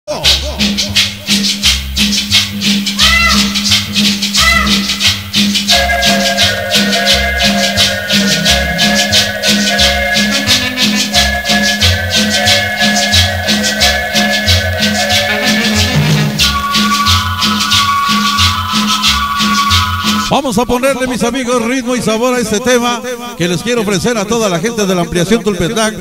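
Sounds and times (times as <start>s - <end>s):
pulsing bass line: 0.1s - 20.4s
shaker rhythm: 0.1s - 20.4s
cumbia music: 0.1s - 26.0s
keyboard chord tones: 5.6s - 20.2s.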